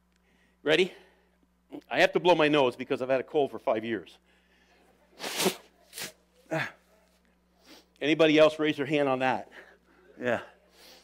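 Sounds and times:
man blowing his nose: 0:05.2 - 0:06.6.

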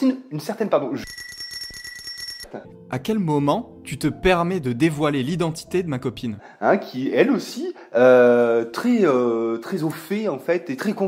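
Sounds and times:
mechanical bell ringing rapidly: 0:01.0 - 0:02.5
music: 0:02.5 - 0:11.0.

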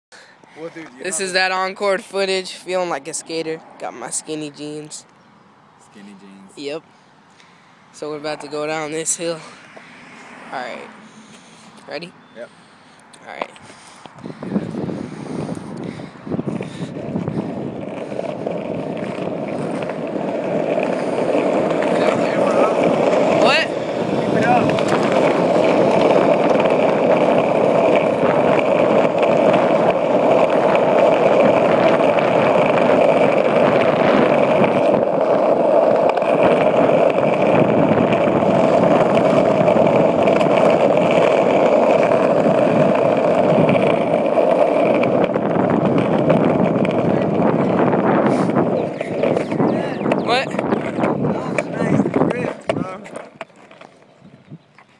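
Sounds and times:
skateboard wheels rolling on concrete: 0:00.1 - 0:54.9.

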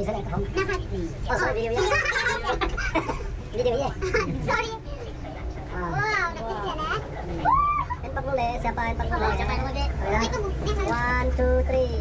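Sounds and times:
people chattering: 0:00.0 - 0:12.0
high-pitched exclamation: 0:07.4 - 0:08.1.

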